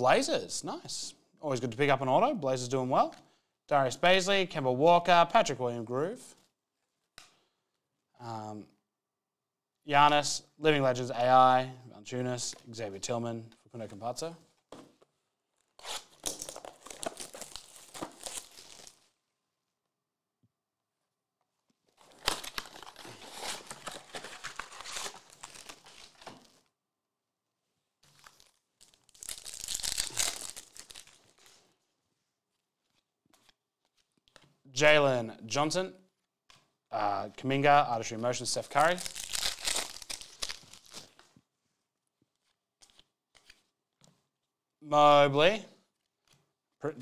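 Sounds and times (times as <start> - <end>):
plastic and foil wrappers crinkling: 16.0 - 19.2, 21.8 - 26.7, 28.0 - 31.9, 38.6 - 41.4.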